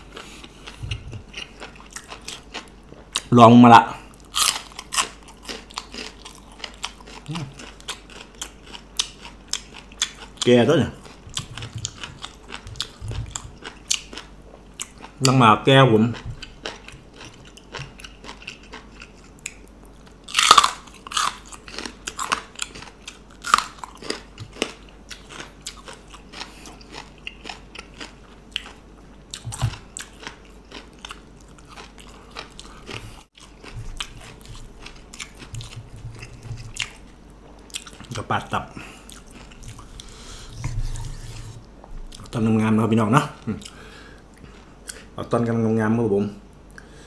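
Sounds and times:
crunching and wet chewing: 0.0 - 3.3, 4.0 - 15.4, 16.0 - 42.4, 43.2 - 45.2
person humming: 7.3 - 7.6.

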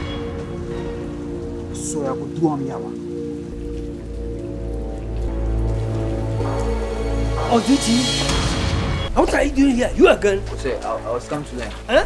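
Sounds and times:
background music with held chords: 0.0 - 12.0.

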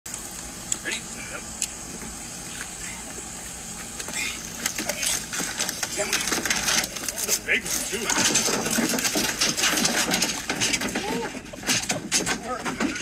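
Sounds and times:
vehicle engine humming: 0.1 - 13.0
muffled voices: 0.8 - 1.8, 2.4 - 13.0.

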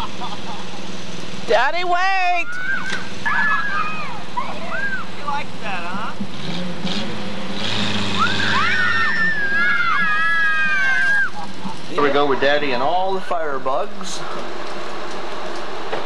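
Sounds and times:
children shouting and squealing: 2.3 - 5.2, 8.2 - 11.8
car engine running: 3.0 - 16.0.

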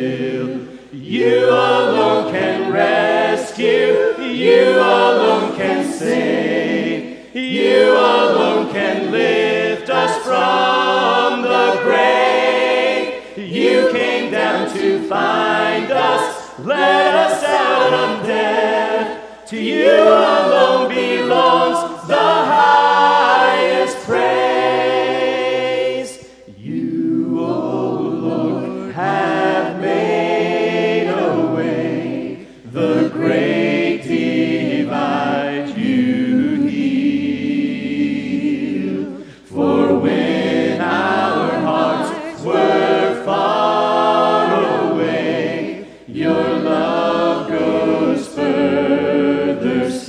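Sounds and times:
group singing a cappella: 0.0 - 50.0.

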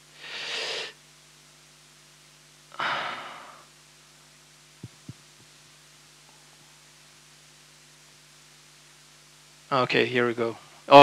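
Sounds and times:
faint electrical hum: 0.0 - 11.0
breathy sigh into microphone: 2.7 - 3.7.

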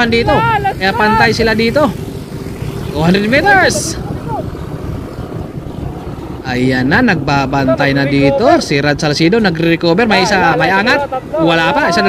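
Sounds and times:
wind and road rumble: 0.0 - 12.0.

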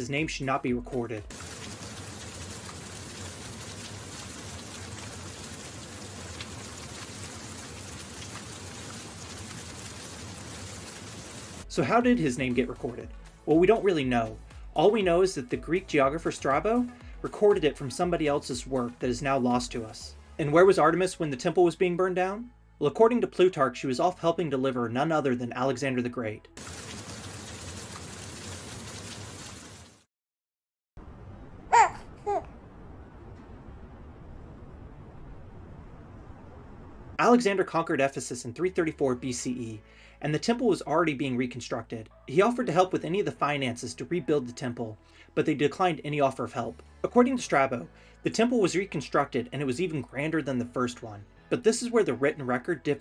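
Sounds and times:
fire crackling: 1.3 - 11.7.

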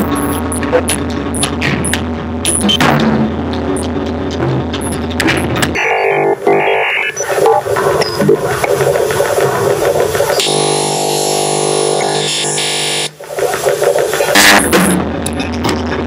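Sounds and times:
electronic noise music: 0.0 - 16.0
steady buzzing drone: 0.0 - 16.0.

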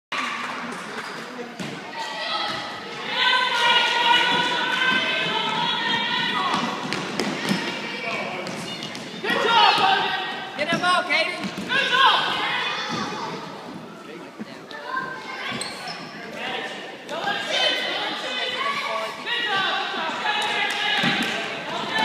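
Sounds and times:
people shouting: 3.0 - 6.8, 9.2 - 10.5, 11.7 - 13.0, 18.5 - 22.0.

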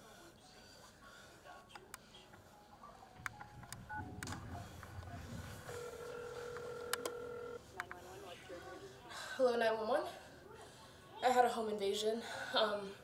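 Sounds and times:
phone ringing tone: 3.2 - 7.8.

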